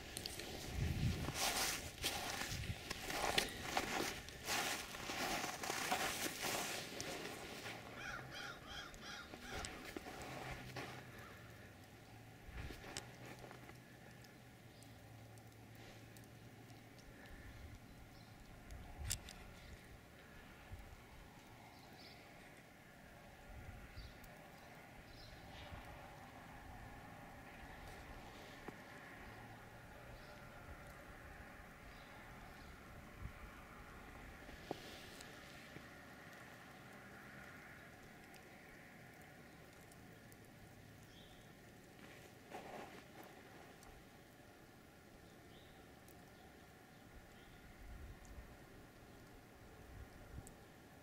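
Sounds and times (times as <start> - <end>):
wind buffeting microphone: 0.0 - 4.6
faint wind: 0.0 - 51.0
small clicks: 12.7 - 20.3.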